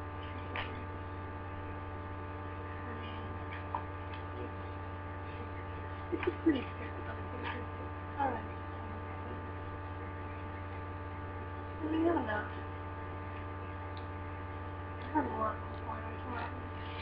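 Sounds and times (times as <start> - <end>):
electrical mains hum: 0.0 - 17.0.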